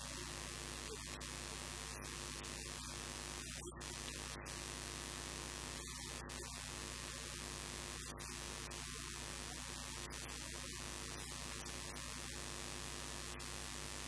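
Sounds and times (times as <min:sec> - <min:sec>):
electrical mains hum: 0:00.0 - 0:14.0
static hiss: 0:00.0 - 0:14.0.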